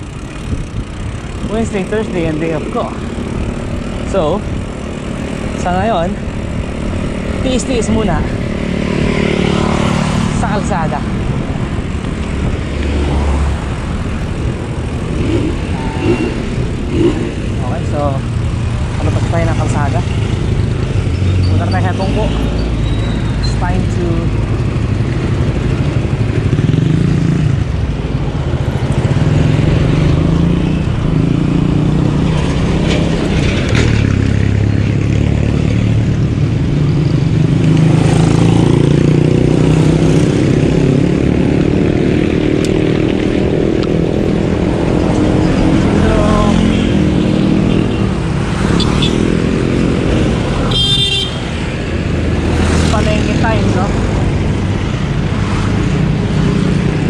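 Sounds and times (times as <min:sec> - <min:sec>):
motorcycles and cars passing: 0:00.0 - 0:57.0
vehicle horn: 0:15.7 - 0:16.4, 0:50.7 - 0:51.5.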